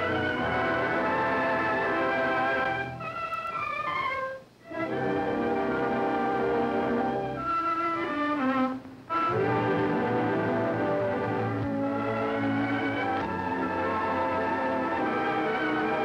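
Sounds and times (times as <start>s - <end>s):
orchestral music strings and brass: 0.0s - 16.0s.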